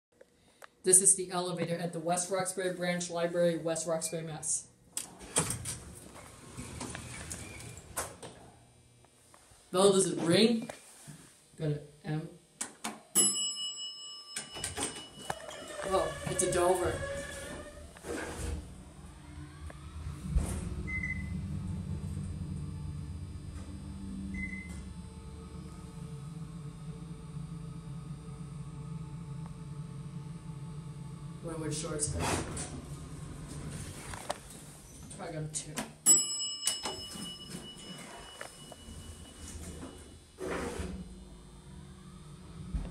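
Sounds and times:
elevator machinery rumble: 0:14.6 - 0:35.4, 0:37.0 - 0:42.9.

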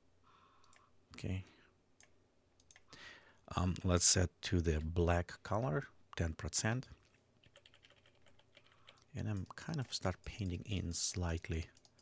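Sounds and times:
computer keyboard clicks: 0:06.9 - 0:10.6, 0:11.8 - 0:12.0.

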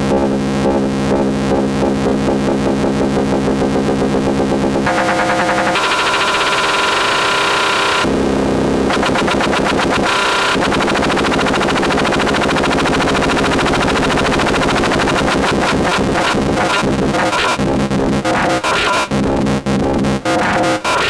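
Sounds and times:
harsh synthesizer drone: 0:00.6 - 0:21.0
fast rattling pulse: 0:04.9 - 0:08.1, 0:08.9 - 0:19.4.

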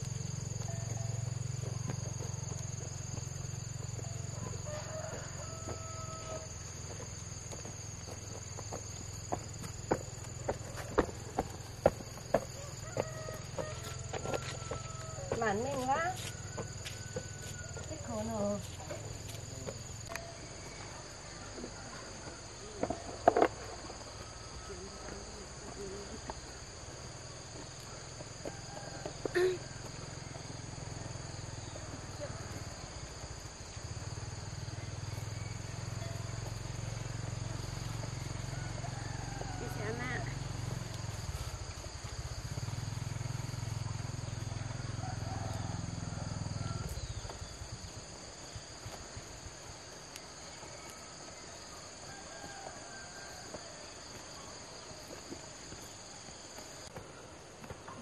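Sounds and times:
insects chirring: 0:00.0 - 0:58.0.

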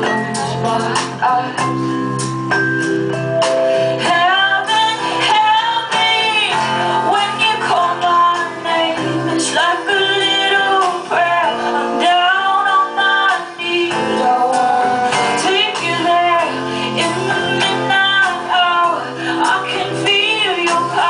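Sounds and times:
woman singing with vibrato: 0:00.0 - 0:02.0, 0:03.9 - 0:21.0
double bass: 0:00.0 - 0:21.0.

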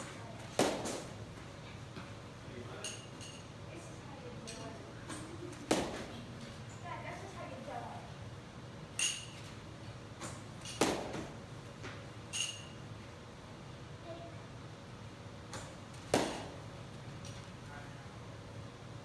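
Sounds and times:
bat cracking ball: 0:00.6 - 0:01.1, 0:10.7 - 0:11.4, 0:16.0 - 0:16.6.

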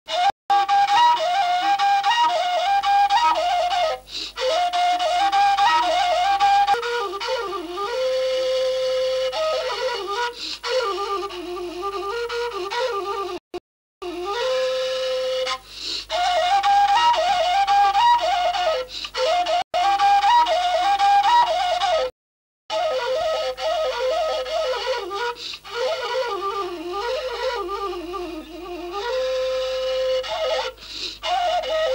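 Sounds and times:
solo flute melody: 0:00.1 - 0:22.1, 0:22.7 - 0:31.9.

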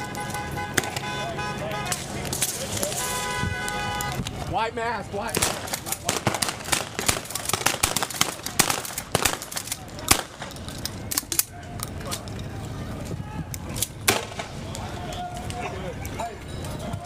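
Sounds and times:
voices: 0:00.0 - 0:17.0
launchers firing sharp pops: 0:05.3 - 0:11.4, 0:13.9 - 0:14.6.

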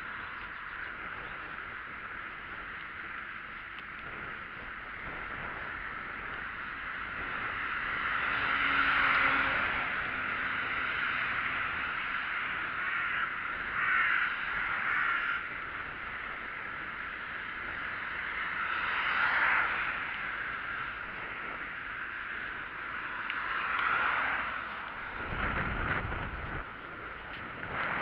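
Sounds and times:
bicycle riding noise: 0:00.0 - 0:28.0
wind noise: 0:00.0 - 0:28.0
crow cawing: 0:12.6 - 0:15.5.

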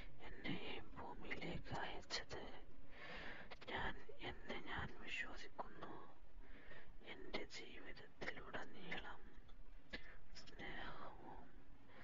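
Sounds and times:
person whispering: 0:00.2 - 0:02.6, 0:03.5 - 0:06.2, 0:07.0 - 0:11.6.

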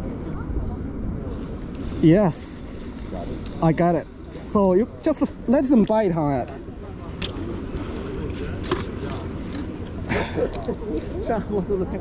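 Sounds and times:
people talking: 0:10.1 - 0:12.0.

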